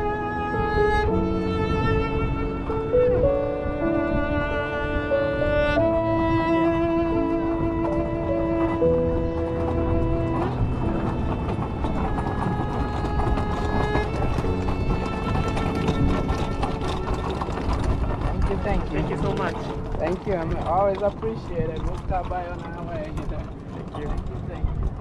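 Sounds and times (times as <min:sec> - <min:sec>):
bowed cello: 0:00.0 - 0:24.9
short knocks: 0:07.4 - 0:25.0.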